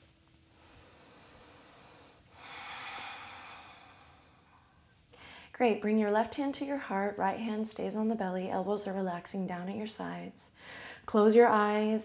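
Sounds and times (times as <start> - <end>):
person exhaling: 0.8 - 5.4.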